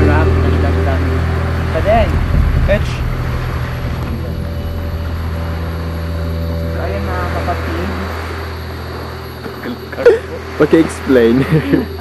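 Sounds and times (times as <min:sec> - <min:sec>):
low engine drone with whine: 0:00.0 - 0:12.0.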